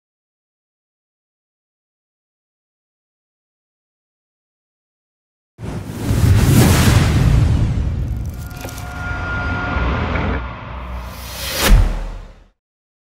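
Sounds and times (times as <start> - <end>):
deep rumbling whoosh: 5.7 - 12.4
metallic ringing tone: 8.3 - 11.7.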